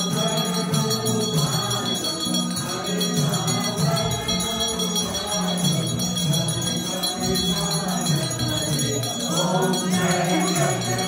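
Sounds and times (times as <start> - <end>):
crowd singing devotional song: 0.0 - 11.0.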